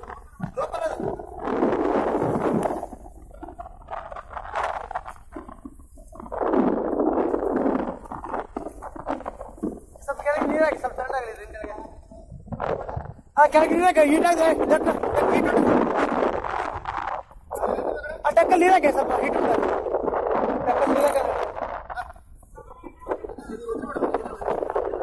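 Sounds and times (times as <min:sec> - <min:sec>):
surges of wind and water: 0:00.0 - 0:25.0.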